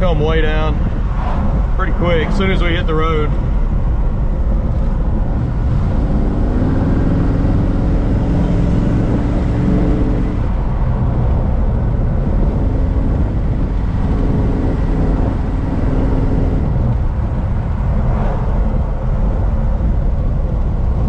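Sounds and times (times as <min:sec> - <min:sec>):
car engine running: 0:00.0 - 0:21.0
road noise: 0:00.0 - 0:21.0.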